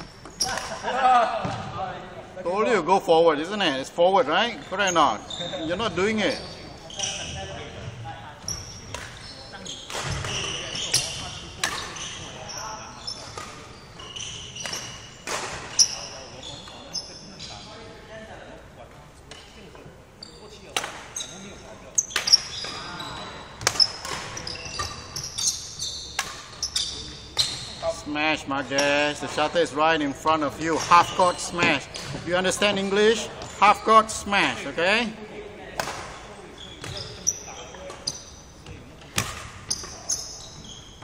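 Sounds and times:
shoe squeaks on court floor: 0.0s - 0.8s, 4.6s - 17.8s, 20.2s - 27.9s, 36.2s - 41.0s
racket hitting shuttlecock: 9.9s - 12.0s, 23.6s - 25.2s, 26.1s - 26.7s, 39.0s - 40.0s.

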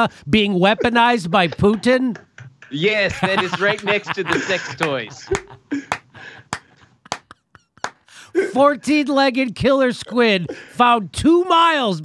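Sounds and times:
man laughing breathily: 3.3s - 8.6s
sharp hand claps: 3.7s - 8.1s.

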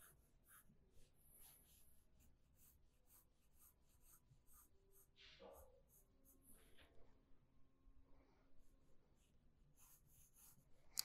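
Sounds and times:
pencil scratching on paper: 0.0s - 6.8s, 9.8s - 10.7s.

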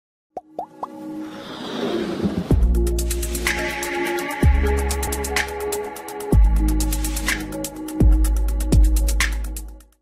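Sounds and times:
musical build-up: 0.6s - 8.0s.

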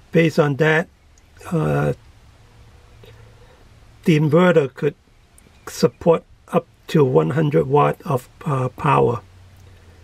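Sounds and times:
man murmuring: 1.4s - 2.0s.

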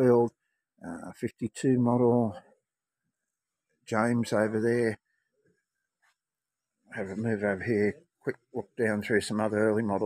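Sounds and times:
man talking: 0.0s - 2.4s, 3.9s - 5.0s, 7.0s - 10.0s.

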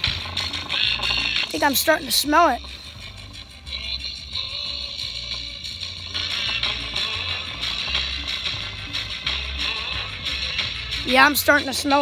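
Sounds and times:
distorted music from small speaker: 0.0s - 12.0s.

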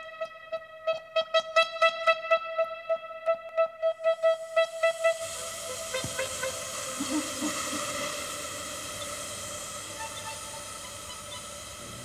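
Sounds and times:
steady hiss: 4.2s - 12.0s.

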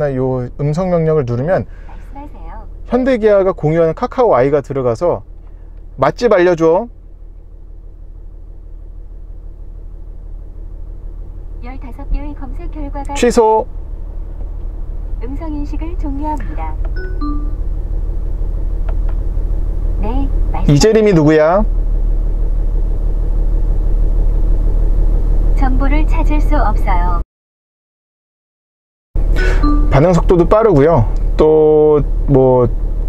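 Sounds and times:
diesel engine idling: 0.0s - 27.2s, 29.2s - 33.0s.

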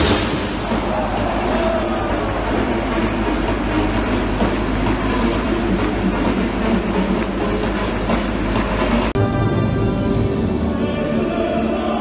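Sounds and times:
football crowd cheering and chanting: 0.0s - 12.0s
music: 0.0s - 12.0s.

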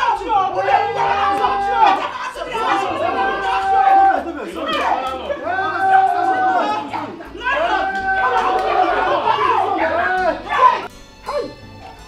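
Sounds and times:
voices shouting in a scuffle: 0.0s - 11.6s.

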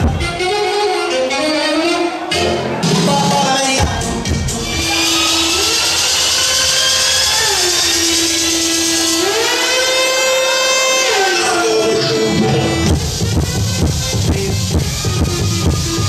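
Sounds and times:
rising synth sweeps: 4.1s - 9.5s.

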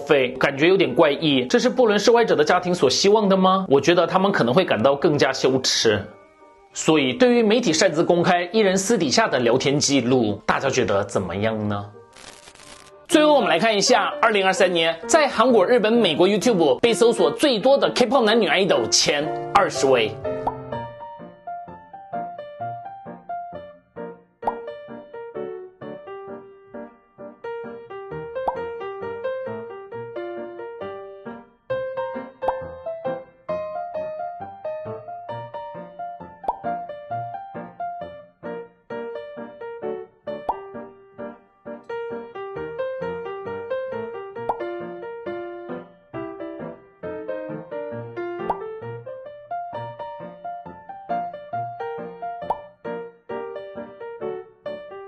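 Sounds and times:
bouncy keyboard music: 13.1s - 55.0s
pop sound effect: 20.4s - 20.7s, 24.4s - 24.7s, 28.4s - 28.7s, 36.5s - 36.8s, 44.5s - 44.7s, 48.4s - 48.7s, 52.4s - 52.7s.

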